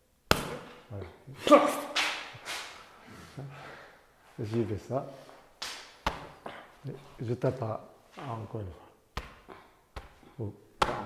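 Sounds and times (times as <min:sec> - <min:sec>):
hand slapping body: 0:00.3 - 0:00.9, 0:01.5 - 0:02.8, 0:05.6 - 0:06.5, 0:09.1 - 0:11.0.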